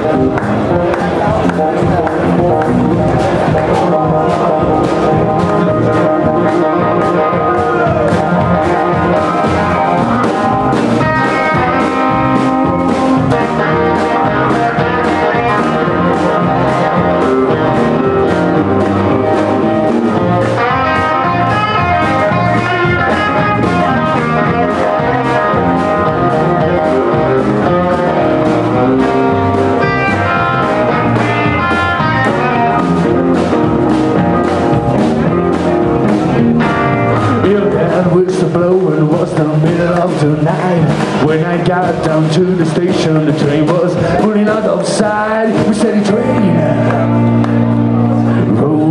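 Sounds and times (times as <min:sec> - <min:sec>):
drum kit beat: 0:00.0 - 0:48.9
electric bass: 0:00.0 - 0:48.9
lead electric guitar: 0:00.0 - 0:48.9.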